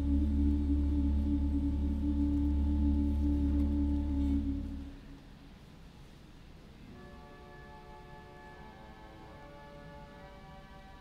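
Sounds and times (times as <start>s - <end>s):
church organ chords: 0.0s - 5.0s, 6.9s - 11.0s.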